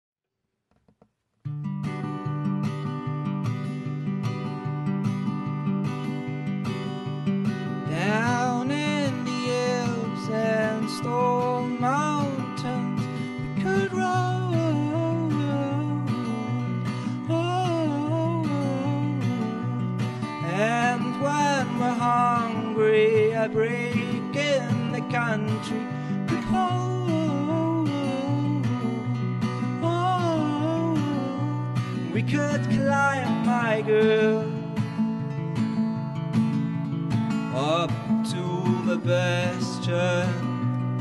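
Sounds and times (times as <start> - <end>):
acoustic guitar strumming: 1.4 - 41.0.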